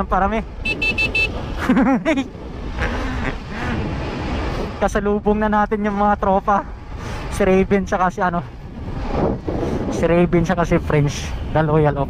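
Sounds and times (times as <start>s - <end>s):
motorbike riding: 0.0s - 12.0s
road rumble: 0.0s - 12.0s
wind on microphone: 2.2s - 5.3s, 6.7s - 12.0s.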